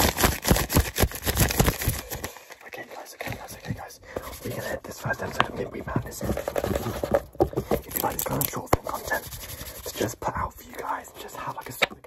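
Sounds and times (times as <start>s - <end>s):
man whispering: 2.4s - 6.9s, 7.6s - 12.0s.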